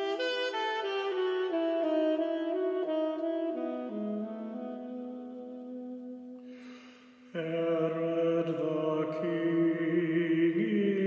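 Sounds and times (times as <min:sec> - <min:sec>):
saxophone slow melody: 0:00.0 - 0:06.8.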